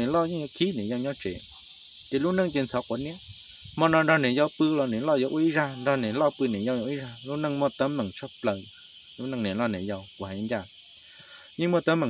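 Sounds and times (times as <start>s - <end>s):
insects chorus: 0.0s - 12.0s
man talking in low voice: 2.1s - 10.7s.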